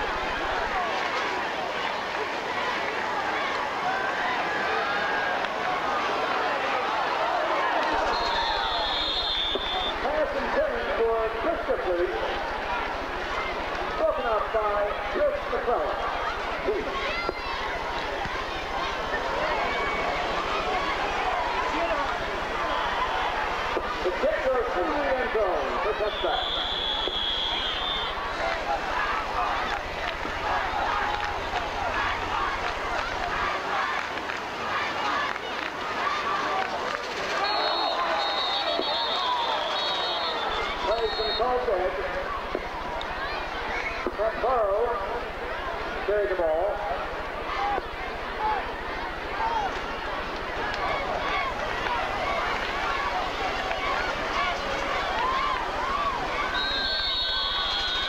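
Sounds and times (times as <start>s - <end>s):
crowd talking: 0.0s - 58.0s
high whistle tones: 8.0s - 10.0s, 26.1s - 28.2s, 37.4s - 41.6s, 56.3s - 58.0s.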